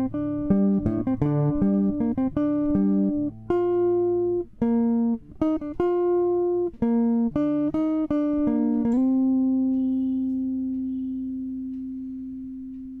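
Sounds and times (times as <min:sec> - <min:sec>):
electric guitar plucked notes: 0:00.0 - 0:13.0.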